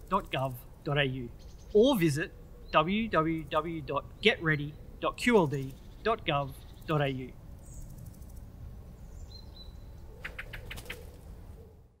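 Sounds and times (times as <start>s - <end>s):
bird chirps: 0.1s - 11.2s.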